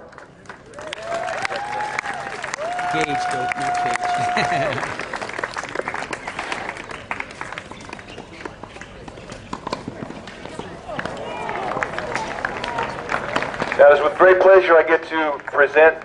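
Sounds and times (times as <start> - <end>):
audience applause: 0.1 - 7.8, 10.9 - 16.0
crowd holding high note: 1.5 - 5.3.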